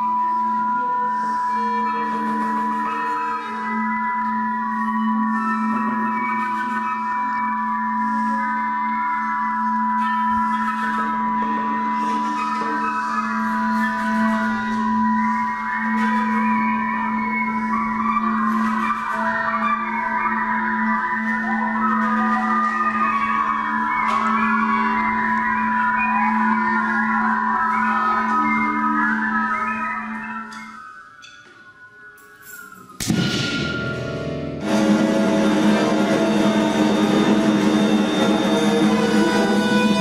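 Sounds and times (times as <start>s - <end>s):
wavering gliding high pitches: 0.0s - 40.0s
high held tone: 32.3s - 40.0s
steady low drone: 33.0s - 40.0s.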